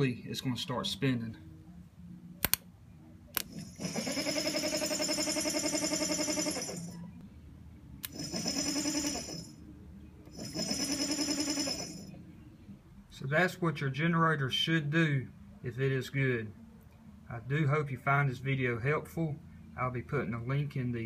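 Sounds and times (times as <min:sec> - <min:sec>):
sharp click: 0:02.4 - 0:02.6.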